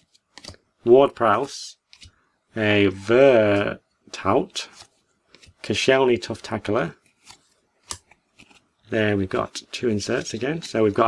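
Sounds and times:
trading cards snapping and sliding: 0:00.0 - 0:00.7, 0:01.8 - 0:02.2, 0:04.6 - 0:05.7, 0:07.0 - 0:08.7.

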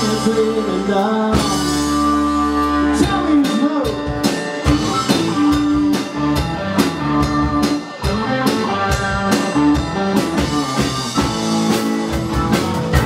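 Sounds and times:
bent electric guitar notes: 0:00.0 - 0:13.0
live rock band playing: 0:00.0 - 0:13.0
steady drum beat: 0:00.0 - 0:13.0.

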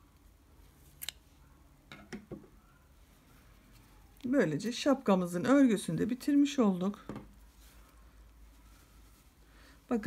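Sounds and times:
yarn handling: 0:00.1 - 0:10.0.

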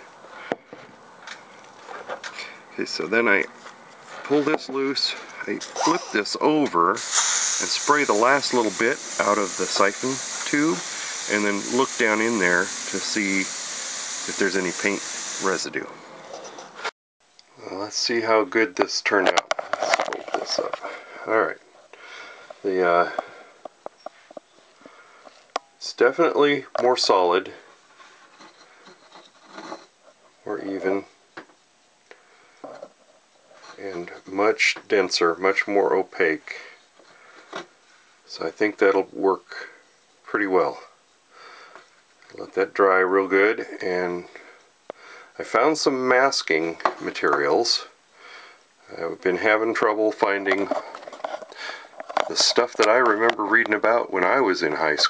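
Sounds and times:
sharp airbrush click: 0:07.0 - 0:09.3.

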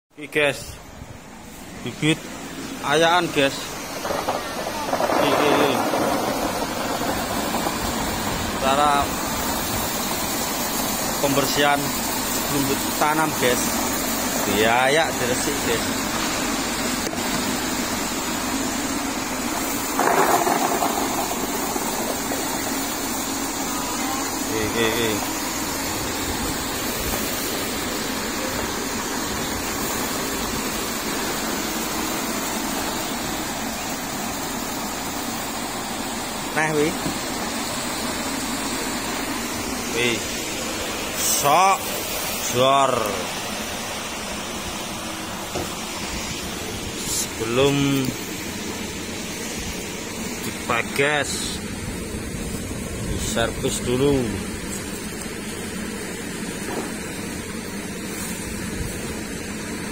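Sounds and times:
electric fan blowing air: 0:00.2 - 0:59.9
bulbs pouring into a tub: 0:19.8 - 0:23.4.

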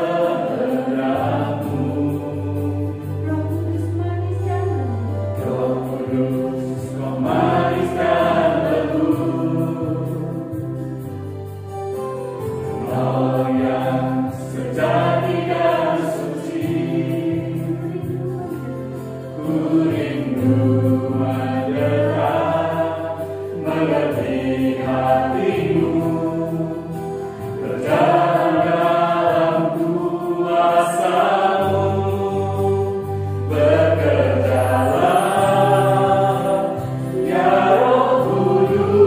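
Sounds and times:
vocal group singing in harmony: 0:00.0 - 0:11.7, 0:12.4 - 0:39.0
sustained keyboard chords: 0:00.0 - 0:39.0.

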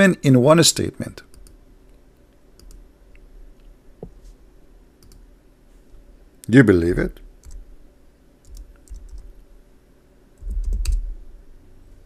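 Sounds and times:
low steady hum: 0:00.0 - 0:12.0
keyboard and mouse clicks: 0:01.3 - 0:01.6, 0:02.6 - 0:02.8, 0:05.0 - 0:05.3, 0:08.4 - 0:09.3, 0:10.4 - 0:11.0.

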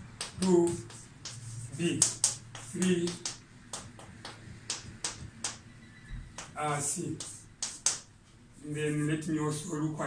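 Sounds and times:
chalk tapping and scratching on blackboard: 0:00.0 - 0:05.7, 0:06.3 - 0:08.2.

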